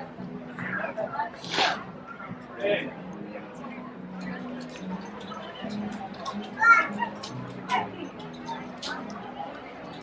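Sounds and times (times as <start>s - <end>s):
hubbub of voices: 0.0s - 10.0s.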